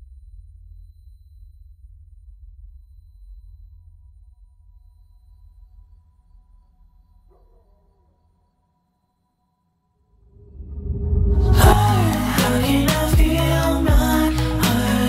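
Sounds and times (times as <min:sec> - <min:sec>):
low rumble drone: 0:10.4 - 0:15.0.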